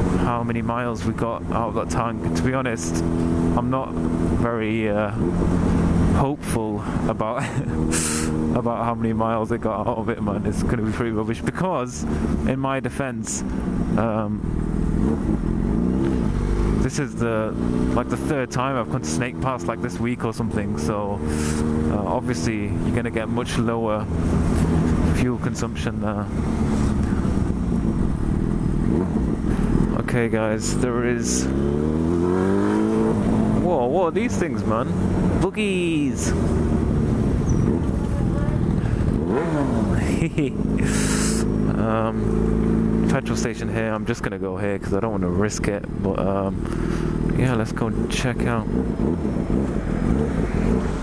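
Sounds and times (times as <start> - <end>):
motorcycle engine running: 13.4 - 51.0.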